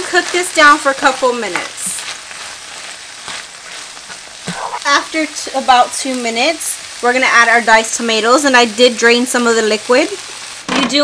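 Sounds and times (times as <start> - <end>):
meat and vegetables sizzling in pan: 0.0 - 11.0
spatula scraping and stirring: 0.6 - 5.0.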